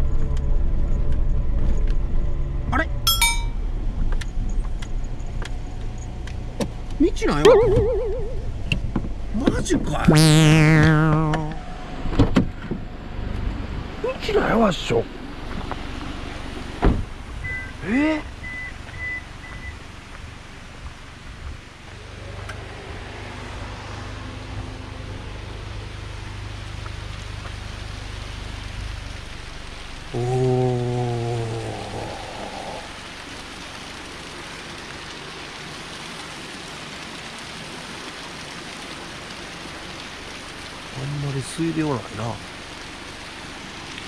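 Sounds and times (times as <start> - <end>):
stream rushing over rocks: 3.1 - 3.6, 6.8 - 12.0, 13.2 - 44.0
brief low vocal sound: 30.2 - 32.9.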